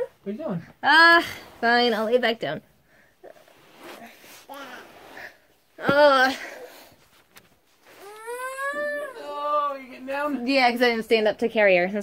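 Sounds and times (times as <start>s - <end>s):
toddler whining: 7.9s - 9.8s.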